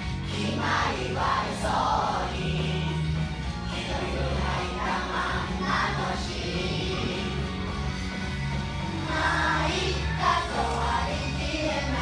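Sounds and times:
children's choir singing: 0.2 - 7.6, 8.9 - 12.0.

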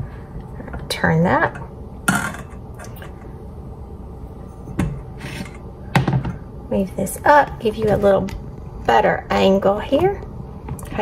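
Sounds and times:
saucepan scraping on cooktop: 4.5 - 5.6.

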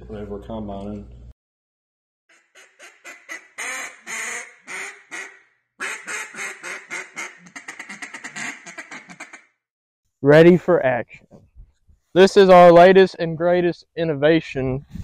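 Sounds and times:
ducks quacking: 2.3 - 9.5.

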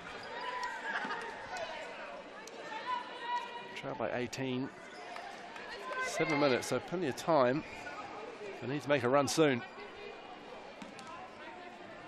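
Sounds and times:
faint arena hubbub: 0.0 - 12.0.

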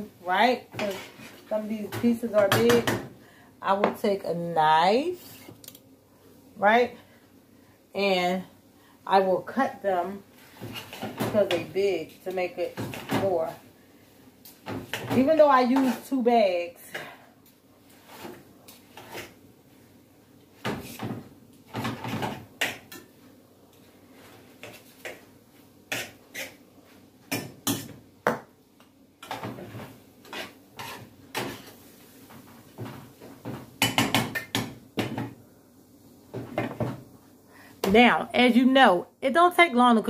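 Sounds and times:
metal utensils scraping a skillet: 25.9 - 26.6, 30.2 - 31.8.

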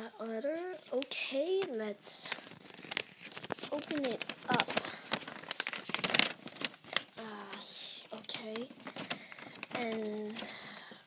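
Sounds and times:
paper crinkling and rustling: 0.3 - 11.0.

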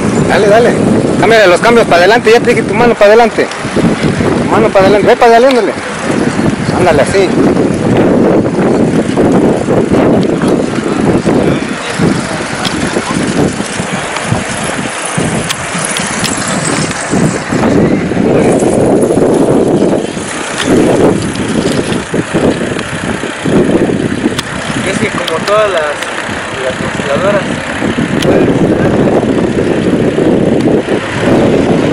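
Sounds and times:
road noise: 0.0 - 31.9
wind rumbling on microphone: 0.0 - 31.9
indistinct voices: 9.4 - 19.1.

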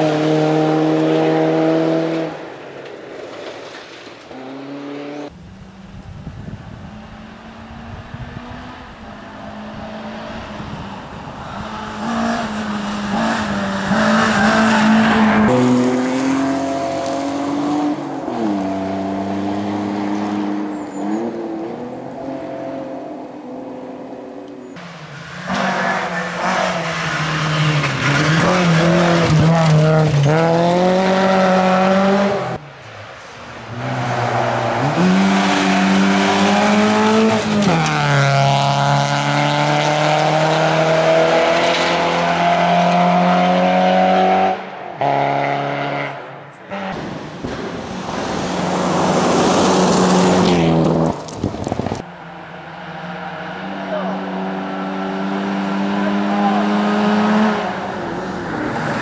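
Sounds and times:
rally car engines revving: 0.0 - 2.6, 4.3 - 59.0.

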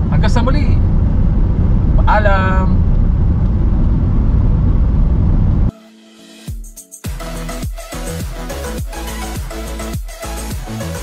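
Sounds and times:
car engine and road noise: 0.0 - 5.7.

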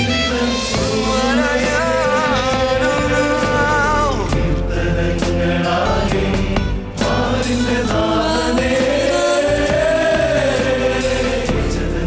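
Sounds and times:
instrumental backing: 0.0 - 12.0
male choir singing a hymn: 0.1 - 12.0.

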